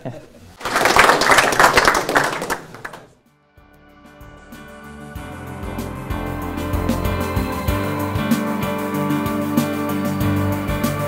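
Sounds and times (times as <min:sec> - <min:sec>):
audience applause: 0:00.6 - 0:03.2
music with sustained notes: 0:03.3 - 0:11.0.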